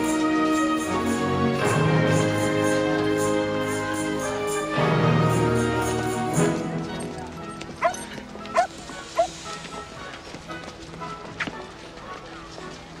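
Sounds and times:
quiet background music: 0.0 - 13.0
dog barking: 7.8 - 9.3.

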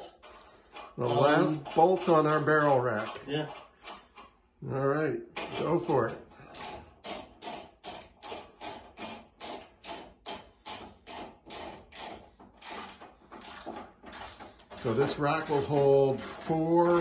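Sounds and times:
ratchet wrench clicking: 6.5 - 17.0.

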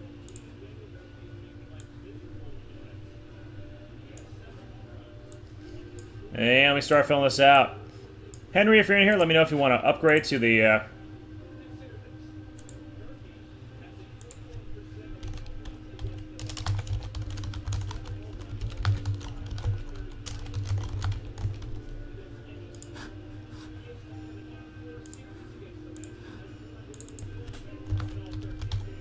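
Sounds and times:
low steady hum: 0.0 - 29.0
typing on keyboard: 15.2 - 21.8, 27.0 - 29.0.

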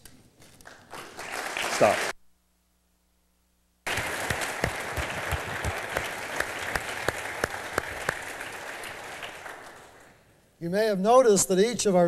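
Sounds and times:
audience applause: 0.7 - 2.1, 3.9 - 10.2.

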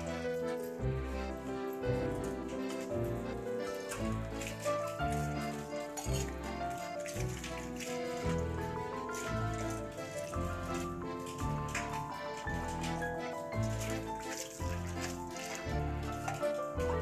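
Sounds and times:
background music melody: 0.0 - 17.0.

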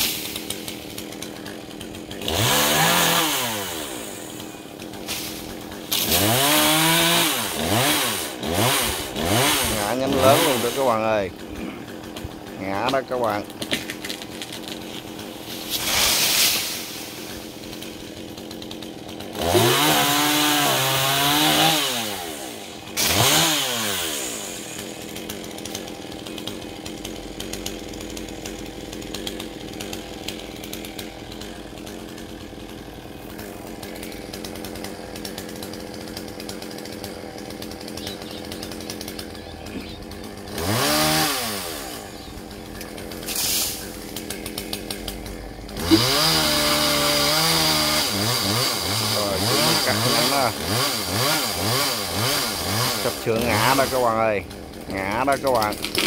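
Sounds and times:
chainsaw idling and revving: 0.0 - 56.0.

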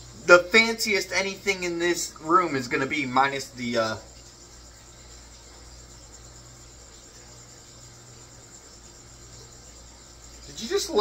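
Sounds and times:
crickets chirping: 0.0 - 11.0
low even hum: 0.0 - 11.0.

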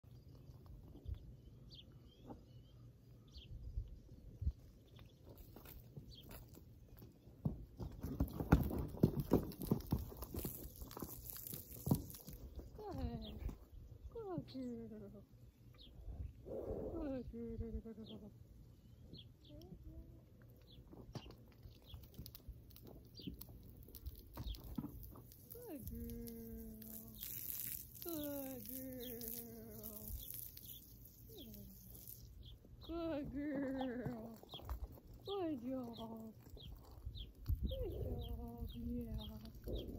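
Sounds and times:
horse hooves thudding on dirt: 5.2 - 13.7, 20.7 - 26.4
hose spraying water: 25.4 - 32.4
woman's drawn-out soothing calls: 28.0 - 30.2.

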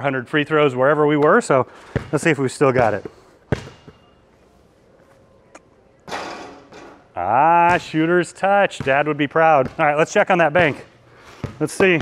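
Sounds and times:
basketball bouncing on court floor: 1.2 - 4.0, 7.6 - 8.0, 8.7 - 12.0.

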